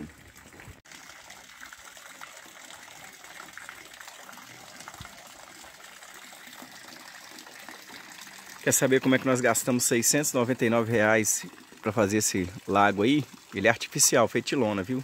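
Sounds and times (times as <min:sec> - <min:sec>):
running water rushing: 0:00.0 - 0:15.0.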